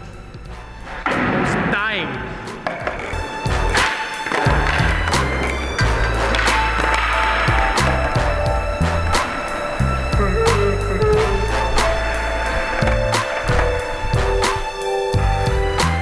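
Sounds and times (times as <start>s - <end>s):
skateboard wheels rolling on concrete: 2.3s - 16.0s
skateboard tail popping and clacking: 2.5s - 14.7s
music with heavy bass: 4.5s - 16.0s.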